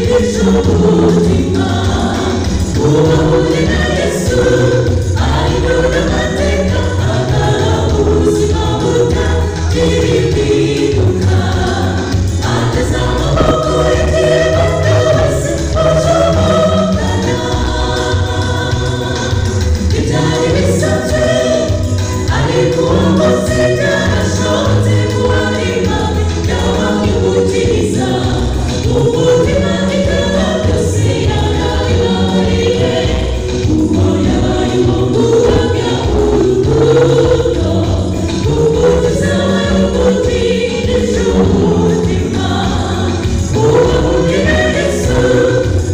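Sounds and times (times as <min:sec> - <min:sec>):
low-pitched accompaniment: 0:00.0 - 0:17.5, 0:30.7 - 0:45.9
choir singing gospel: 0:00.0 - 0:45.9.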